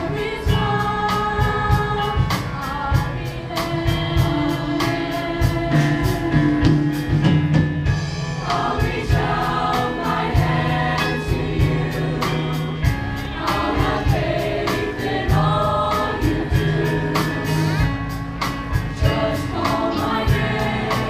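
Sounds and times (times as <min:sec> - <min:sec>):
choir singing in parts: 0:00.0 - 0:06.8, 0:08.4 - 0:21.0
instrumental accompaniment with beat: 0:00.0 - 0:21.0.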